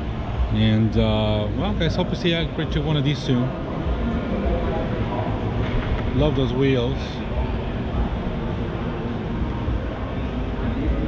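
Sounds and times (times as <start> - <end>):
crowd noise: 0.0 - 11.0
ventilation rumble and hiss: 0.0 - 11.0.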